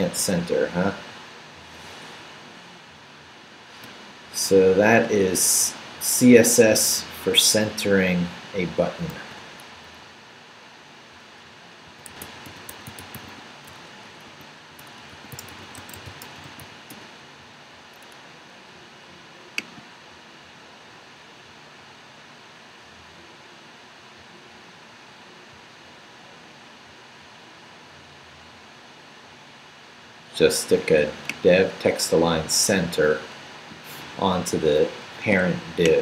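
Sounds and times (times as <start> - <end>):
steady low hiss: 0.0 - 36.0
typing on computer keyboard: 12.0 - 13.4, 14.8 - 17.0.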